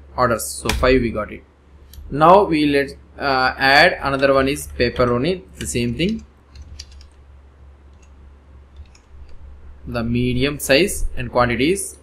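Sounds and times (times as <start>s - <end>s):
low steady hum: 0.0s - 12.0s
man's voice: 0.2s - 1.4s, 2.1s - 6.2s, 9.9s - 12.0s
keyboard key clicks: 5.6s - 7.2s.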